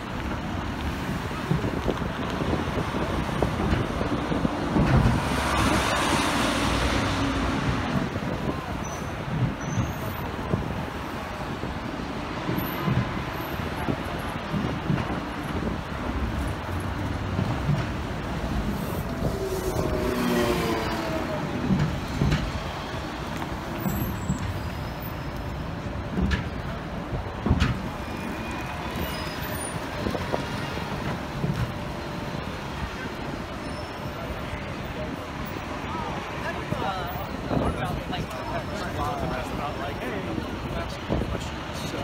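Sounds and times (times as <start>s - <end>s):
city traffic: 0.0s - 42.0s
pitched gliding vehicle sound: 17.4s - 22.6s.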